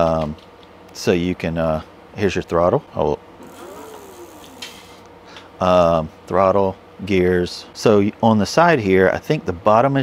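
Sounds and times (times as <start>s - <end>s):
electric motor whine: 3.4s - 5.0s.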